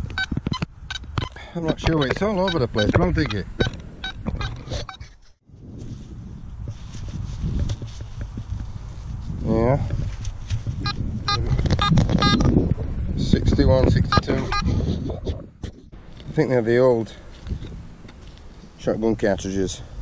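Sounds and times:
metal detector tone: 0:00.0 - 0:05.2, 0:10.8 - 0:12.5, 0:14.0 - 0:14.8
steady low rumble: 0:00.0 - 0:20.0
short repeated beeps: 0:00.2 - 0:05.0, 0:10.8 - 0:12.5, 0:14.1 - 0:14.8.

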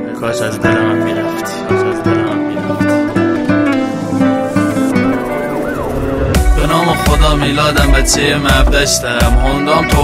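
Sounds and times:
plucked guitar-like notes: 0:00.0 - 0:10.0
siren-like sound effect: 0:04.5 - 0:07.5.

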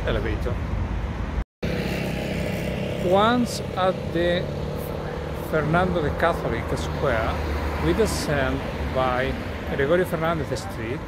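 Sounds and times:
street traffic: 0:00.0 - 0:11.0
engine hum: 0:00.8 - 0:11.0.

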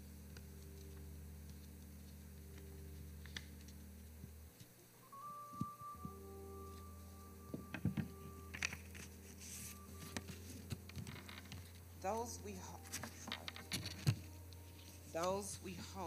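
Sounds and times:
low electrical hum: 0:00.0 - 0:16.0
paper crackling and tapping: 0:00.3 - 0:04.7, 0:12.8 - 0:15.6
thin steady tone: 0:05.0 - 0:13.6.

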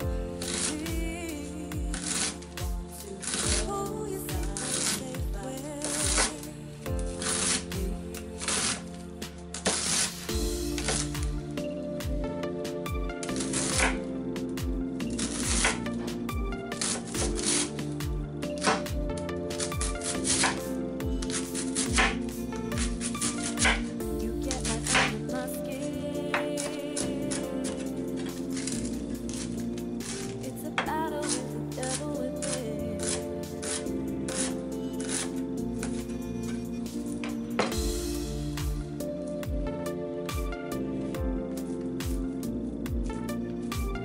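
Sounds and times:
background music with slow beat: 0:00.0 - 0:44.0
knife slicing cabbage: 0:02.0 - 0:06.5, 0:07.1 - 0:11.6, 0:13.2 - 0:38.9.

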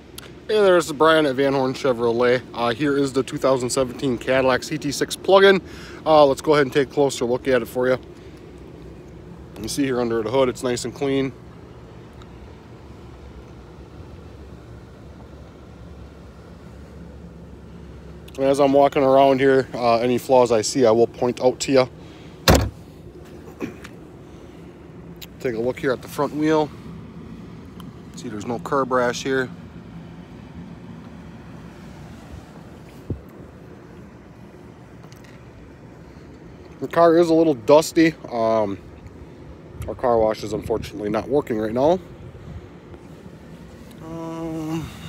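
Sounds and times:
low outdoor rumble: 0:00.0 - 0:45.0
short thump: 0:22.4 - 0:22.8.

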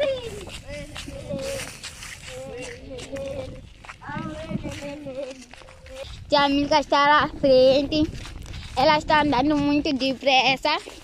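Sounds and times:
high-pitched voices calling: 0:00.0 - 0:07.4.

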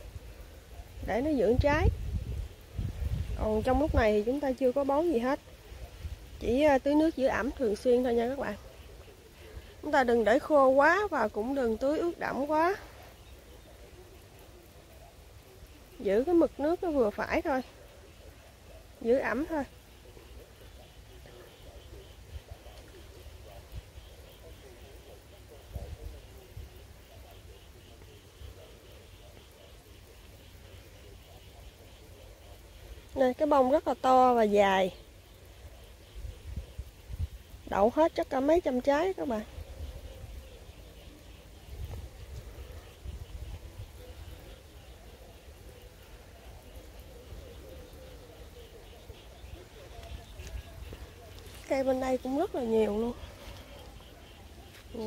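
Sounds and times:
faint distant voices: 0:00.0 - 0:55.0
low rumble on microphone: 0:01.6 - 0:04.1.

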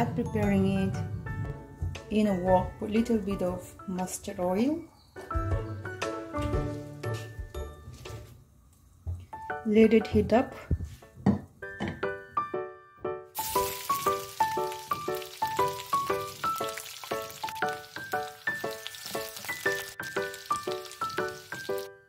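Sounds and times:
onion sizzling in hot oil: 0:13.4 - 0:21.9.

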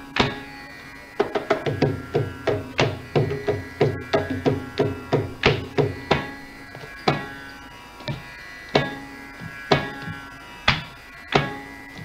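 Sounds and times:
mridangam strokes: 0:00.0 - 0:12.0
steady drone: 0:00.0 - 0:12.0.

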